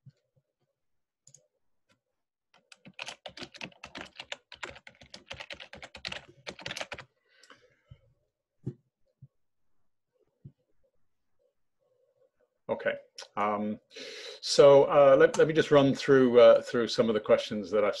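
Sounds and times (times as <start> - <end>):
computer keyboard typing: 2.6 - 7.1.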